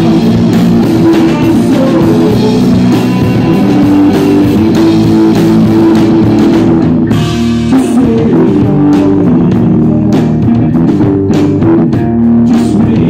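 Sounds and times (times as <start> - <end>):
bass guitar: 0.0 - 13.0
drum kit: 0.0 - 13.0
electric guitar: 0.0 - 13.0.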